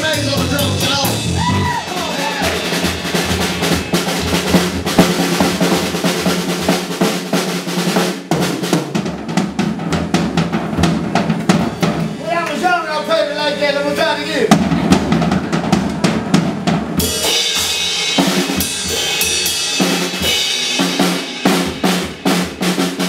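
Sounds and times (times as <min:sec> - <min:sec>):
low bass line: 0:00.0 - 0:06.0
live blues band: 0:00.0 - 0:08.4
quick drum hits: 0:00.0 - 0:12.4, 0:14.5 - 0:23.0.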